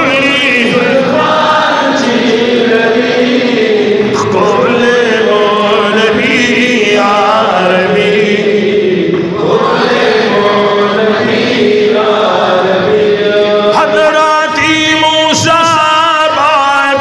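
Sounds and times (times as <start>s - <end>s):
men chanting into microphones: 0.0s - 17.0s.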